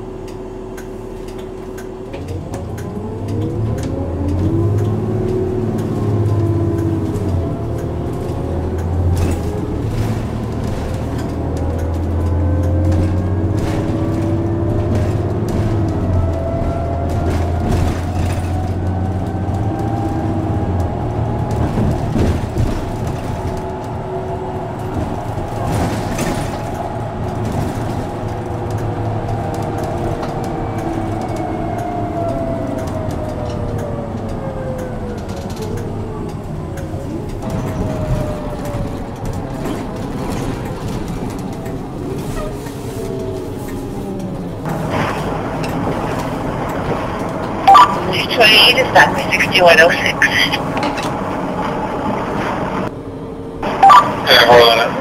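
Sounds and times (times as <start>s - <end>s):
bus engine drone: 0.0s - 55.0s
drivetrain whine: 0.0s - 55.0s.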